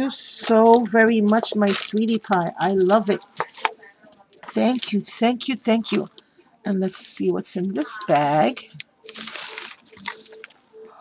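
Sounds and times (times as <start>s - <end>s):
gift bag crinkling: 0.6s - 6.2s, 6.9s - 10.8s.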